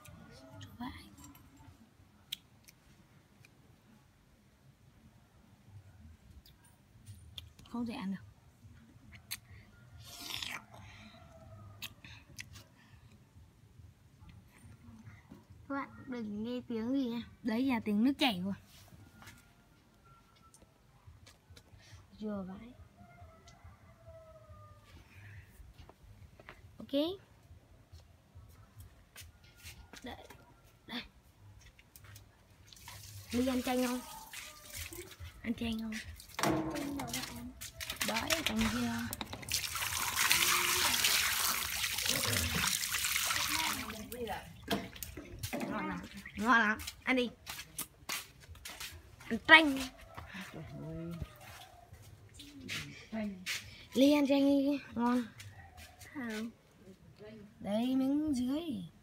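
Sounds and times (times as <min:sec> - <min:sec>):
wet slurp: 0:39.5 - 0:43.9.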